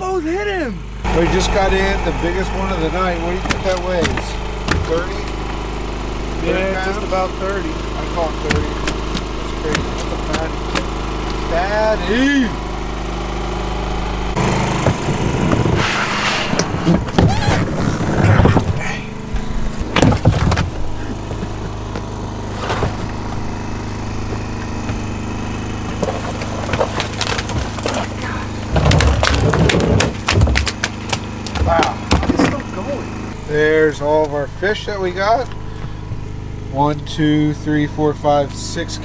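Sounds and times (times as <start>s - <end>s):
small engine running: 0.0s - 39.0s
knocks thumps and scrapes: 3.3s - 5.6s, 7.4s - 11.7s, 14.4s - 32.8s.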